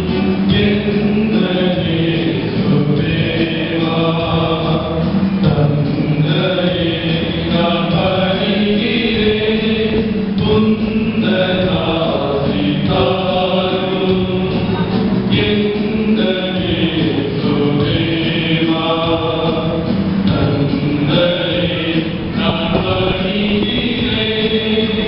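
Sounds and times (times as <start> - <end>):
church choir singing a hymn: 0.0 - 25.0.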